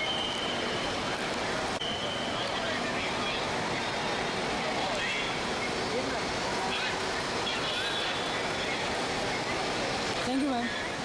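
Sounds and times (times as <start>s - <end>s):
busy airport forecourt noise: 0.0s - 11.0s
faint scattered voices: 0.7s - 11.0s.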